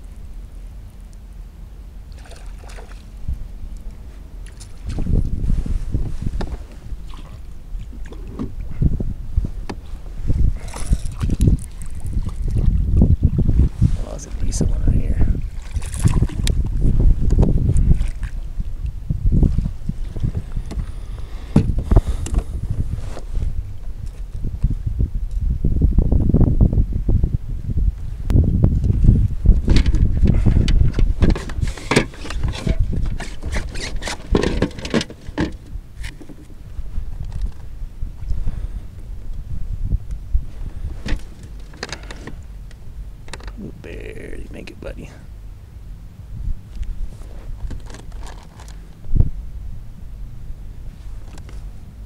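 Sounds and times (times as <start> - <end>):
wind rumbling on microphone: 0.0 - 52.0.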